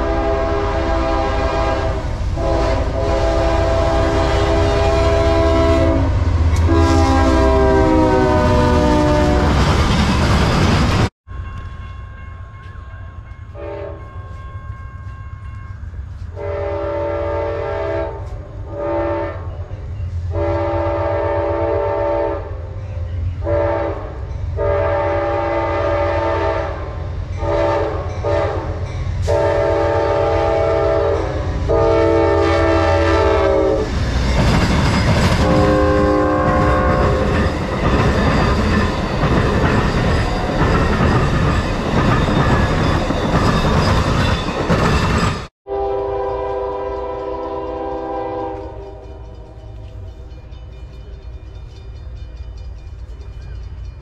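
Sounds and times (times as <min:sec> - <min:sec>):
train air horn blasts: 0:00.0 - 0:09.6, 0:13.5 - 0:14.2, 0:16.3 - 0:22.8, 0:23.4 - 0:34.0, 0:35.4 - 0:37.5, 0:45.6 - 0:50.0
quieter train horn: 0:00.0 - 0:09.7, 0:13.0 - 0:34.1, 0:35.2 - 0:41.6, 0:45.6 - 0:51.2
train wheels rumbling on rail: 0:00.0 - 0:54.0.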